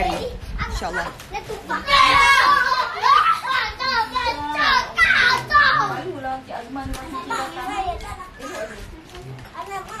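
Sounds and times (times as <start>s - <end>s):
children talking and playing: 0.0s - 10.0s.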